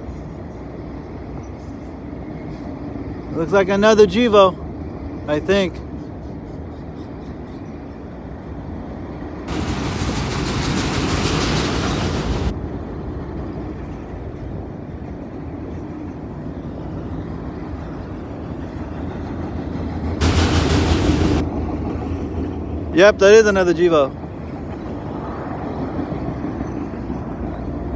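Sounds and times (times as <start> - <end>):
train wheels rumbling on rails: 0.0 - 27.9
loud rushing noise: 9.5 - 12.6, 20.2 - 21.6.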